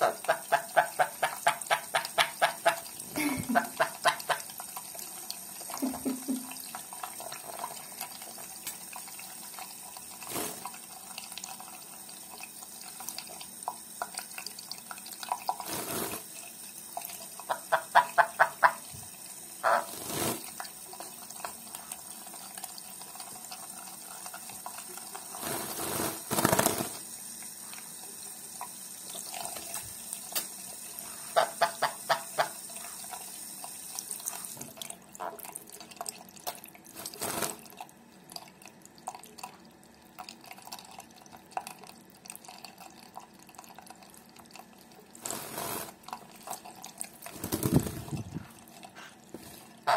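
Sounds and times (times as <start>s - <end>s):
parrot chattering: 19.6s - 19.9s.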